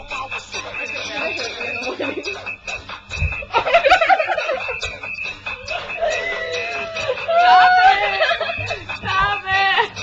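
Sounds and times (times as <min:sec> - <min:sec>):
background music: 0:00.0 - 0:10.0
girls laughing and giggling: 0:01.0 - 0:02.5, 0:03.4 - 0:10.0.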